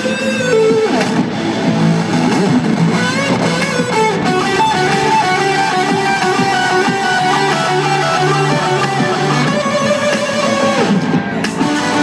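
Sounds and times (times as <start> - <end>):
electric guitar bending notes: 0.0 - 12.0
live rock band playing: 0.0 - 12.0.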